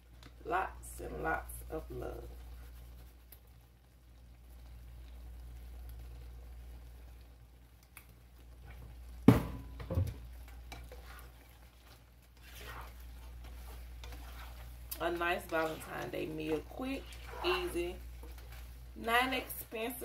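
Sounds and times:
stirring pasta: 0.0s - 20.0s
spatula knocking on skillet: 9.2s - 11.2s.

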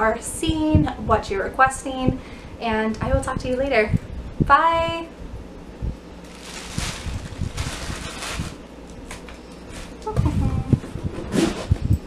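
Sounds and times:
rustling and handling noise: 6.2s - 11.8s.

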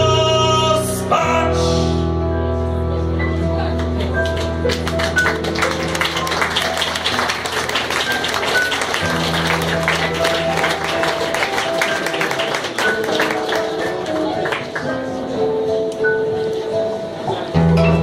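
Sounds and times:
electric keyboard chords: 0.0s - 18.0s.

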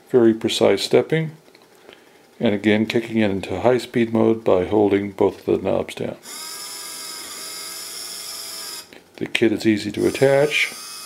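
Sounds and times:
small motor whine: 6.3s - 8.9s, 10.0s - 11.0s.

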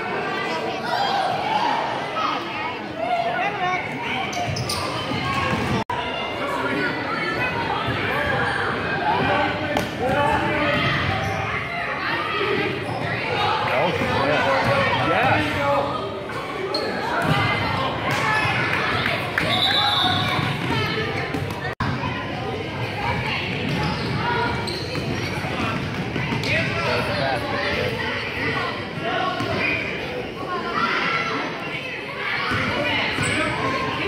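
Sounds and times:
people talking and calling: 0.0s - 34.0s.

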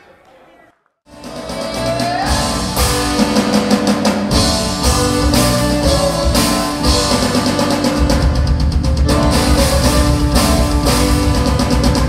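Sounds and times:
drum kit: 1.1s - 12.0s
guitar: 1.1s - 12.0s
rock band music: 1.1s - 12.0s.

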